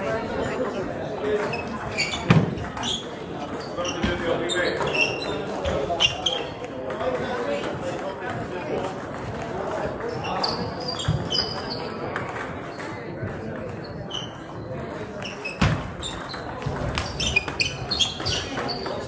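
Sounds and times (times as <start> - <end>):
background chatter: 0.0 - 19.0.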